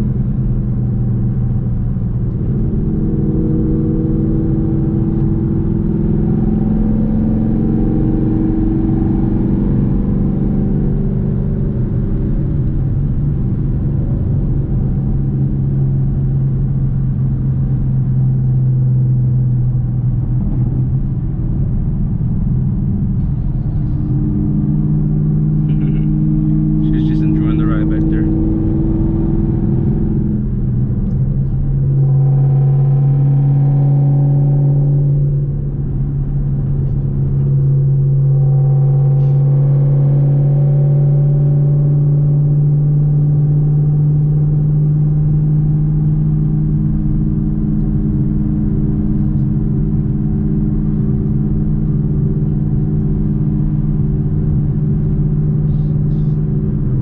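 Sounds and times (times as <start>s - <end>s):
car engine and exhaust drone: 0.0s - 57.0s
man talking: 26.8s - 28.3s.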